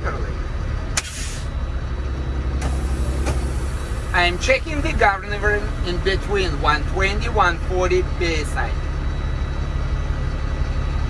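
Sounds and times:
diesel truck engine idling: 0.0 - 11.0
air brake hiss: 1.0 - 1.5.

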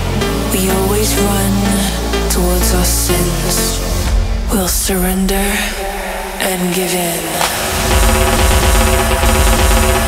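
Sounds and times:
heavy bass: 0.0 - 10.0
steady synth chords: 0.0 - 10.0.

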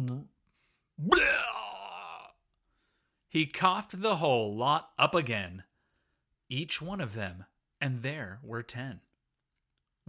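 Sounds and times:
drawn-out vocal groan: 1.0 - 2.3.

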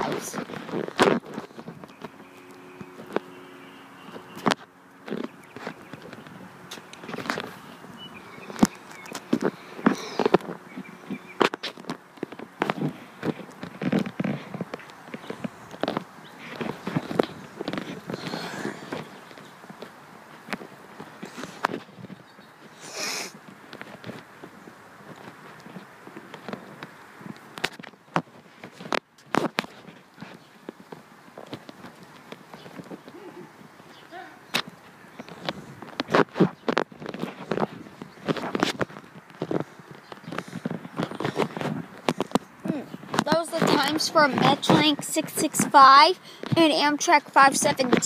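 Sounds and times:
outdoor background hiss: 0.0 - 48.0
faint voices: 39.2 - 48.0.

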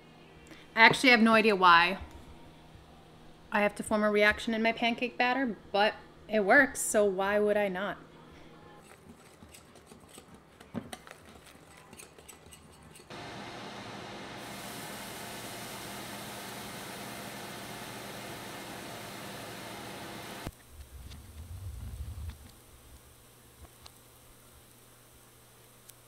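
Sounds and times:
low rumble: 20.8 - 22.9
batter frying in pan: 22.3 - 26.0.

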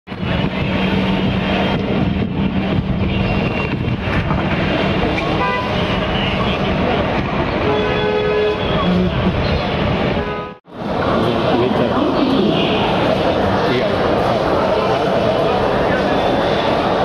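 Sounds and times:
road traffic engines: 0.1 - 17.0
vehicle horn toot: 5.4 - 6.6, 7.6 - 9.2, 10.2 - 10.6.

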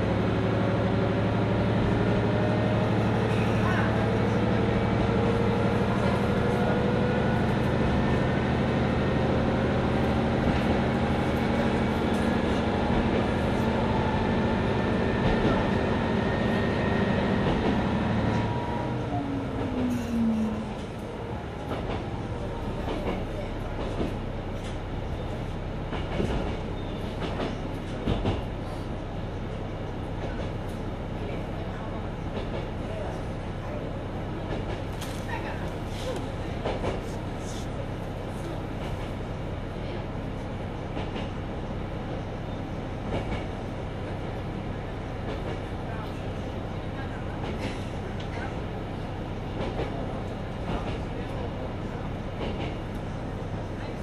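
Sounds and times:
diesel railcar engine: 0.0 - 54.0
railcar coasting: 0.0 - 54.0.

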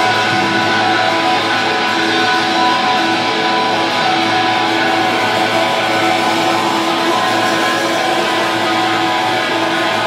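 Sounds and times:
electric guitars droning chords: 0.0 - 10.0
live rock band playing: 0.0 - 10.0.

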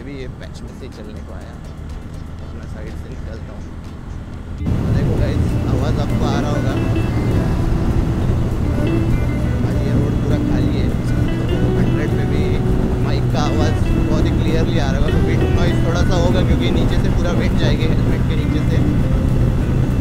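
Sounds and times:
motorcycle engine drone: 0.0 - 20.0
rushing wind noise: 1.7 - 20.0.

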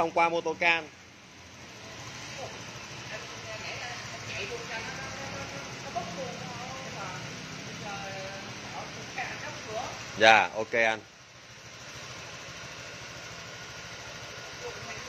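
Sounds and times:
scooter engine idling: 0.0 - 15.0.

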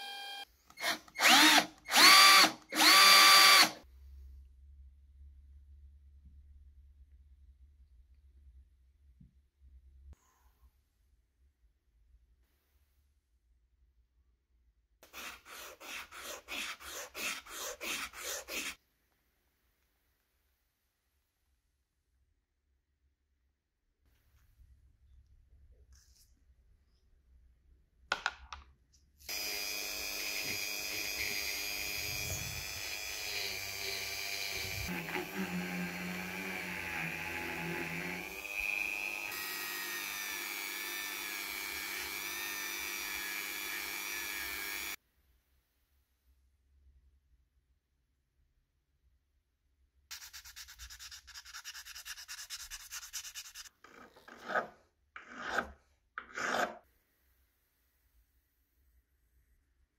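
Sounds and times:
rotary tool grinding metal: 29.3 - 45.0
sandpaper rubbing on metal: 50.1 - 53.7.

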